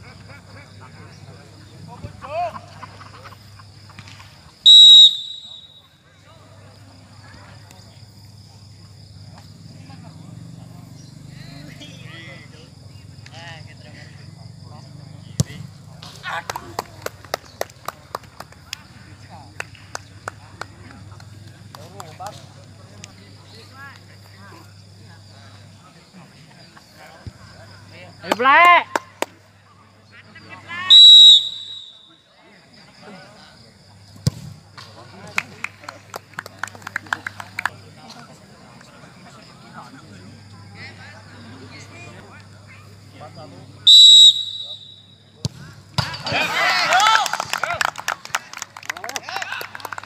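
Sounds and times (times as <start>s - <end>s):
referee's whistle blast: 4.7s - 5.9s, 30.9s - 32.1s, 43.9s - 45.1s.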